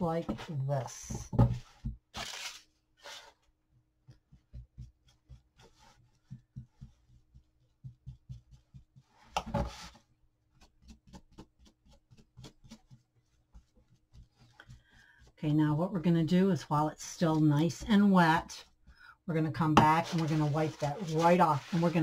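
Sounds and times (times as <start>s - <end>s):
paper rustling: 2.2s - 3.3s, 20.0s - 22.0s
paintbrush tapping and scratching: 4.0s - 22.0s.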